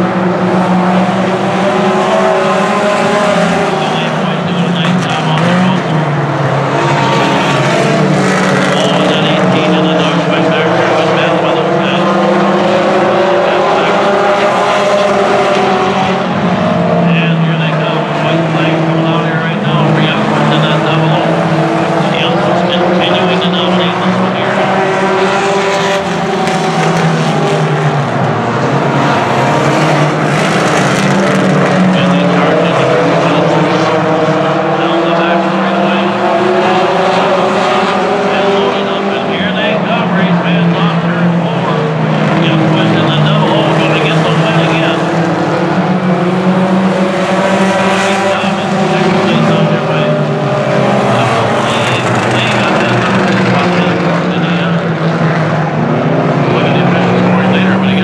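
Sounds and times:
race car engines running hard: 0.0s - 58.0s.

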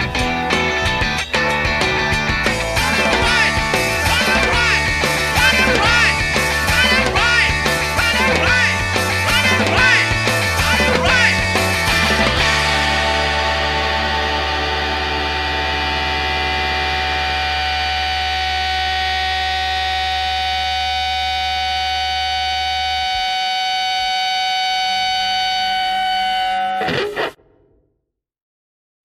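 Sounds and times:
distorted electric guitar chord ringing: 0.0s - 27.7s
held bass note: 0.8s - 27.3s.

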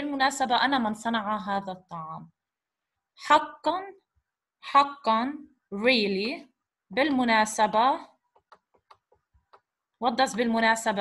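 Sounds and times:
digital pen tapping on screen: 8.3s - 10.5s.

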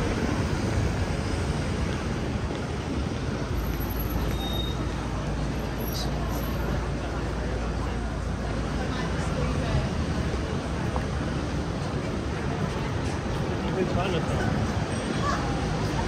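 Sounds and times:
passing cars road noise: 0.0s - 16.0s.

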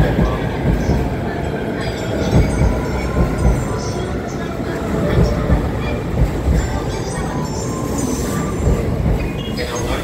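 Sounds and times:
train low rumble: 0.0s - 10.0s.

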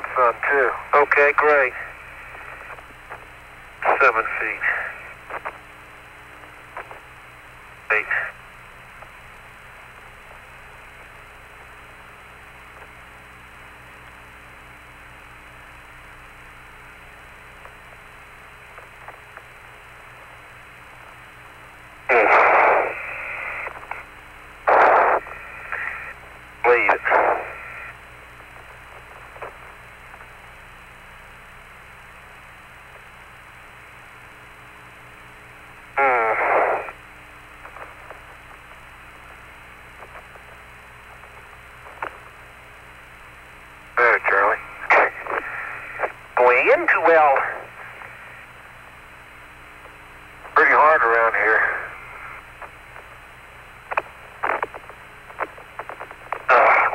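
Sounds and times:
radio hiss: 0.0s - 56.9s
clipped radio voice bursts: 3.8s - 4.9s, 7.9s - 8.4s, 22.1s - 23.5s, 24.7s - 26.0s, 26.6s - 27.7s, 36.0s - 37.0s, 44.0s - 47.7s, 50.6s - 52.0s, 56.5s - 56.9s.

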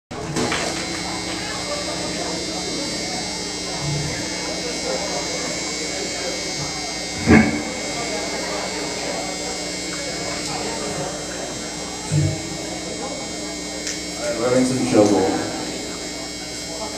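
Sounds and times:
amplifier electric buzz: 0.1s - 16.9s
crowd chatter: 0.1s - 16.9s.

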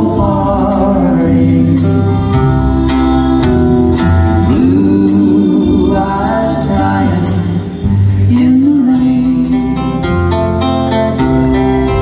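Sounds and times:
live band playing country ballad: 0.0s - 12.0s.

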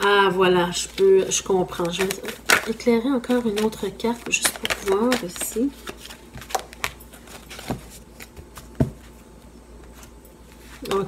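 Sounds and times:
cards clicking and tapping: 1.7s - 8.9s.

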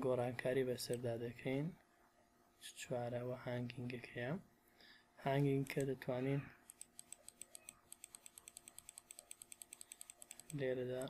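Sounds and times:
computer mouse clicking: 5.6s - 6.0s, 6.6s - 11.0s.

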